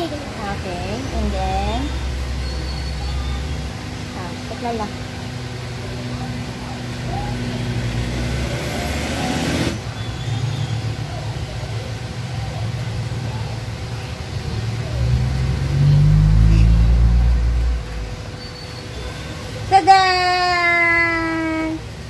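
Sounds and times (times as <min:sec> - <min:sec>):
engine rumble: 0:00.0 - 0:22.0.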